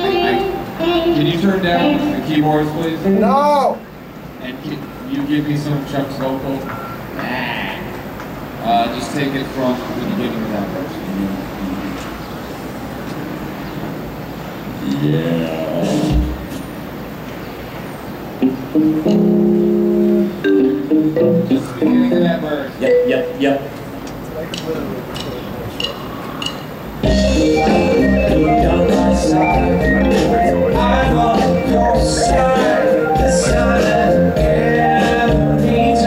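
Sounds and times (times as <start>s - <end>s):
rock band playing loud: 18.4s - 22.4s, 27.0s - 36.0s.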